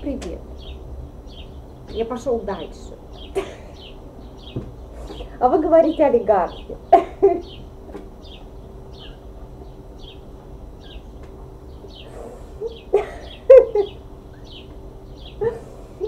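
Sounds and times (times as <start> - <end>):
steady low hum: 0.0 - 16.0
small bird chirping: 0.2 - 16.0.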